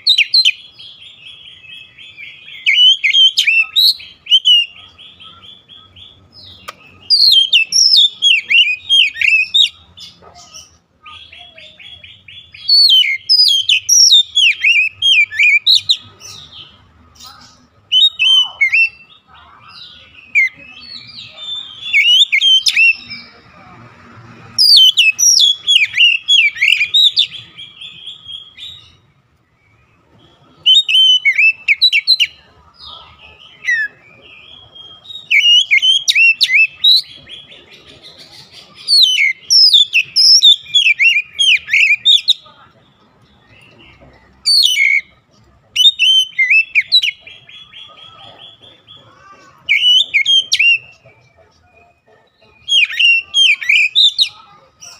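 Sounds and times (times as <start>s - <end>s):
bird singing whistled phrases: 1.3s - 9.8s, 11.1s - 16.0s, 17.9s - 19.1s, 20.2s - 23.2s, 30.6s - 32.3s, 33.7s - 37.1s, 38.9s - 42.5s, 44.5s - 45.1s, 45.8s - 47.9s, 49.7s - 51.0s.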